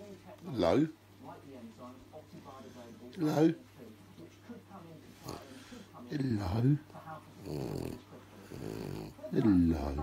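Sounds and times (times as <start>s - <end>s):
dog grunting: 7.4s - 10.0s.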